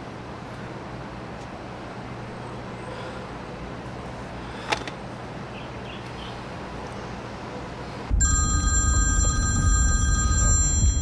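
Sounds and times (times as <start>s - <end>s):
electronic phone ringtone: 8.1s - 11.0s.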